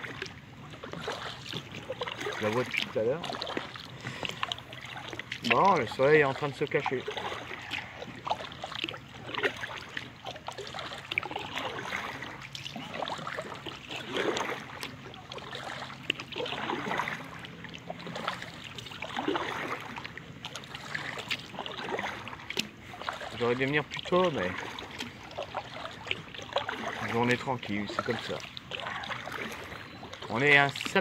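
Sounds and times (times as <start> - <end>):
kayak paddle splashing in water: 0.0 - 31.0.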